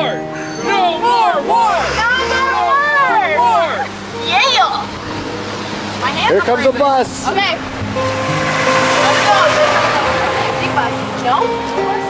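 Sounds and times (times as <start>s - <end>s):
bus driving past: 0.0s - 12.0s.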